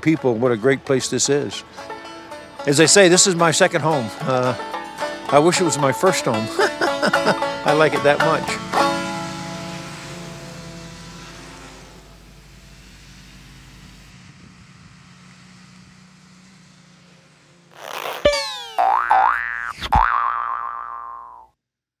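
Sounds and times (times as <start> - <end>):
banjo music: 0.0 - 11.6
springy sliding tones: 1.6 - 12.0, 17.7 - 19.2.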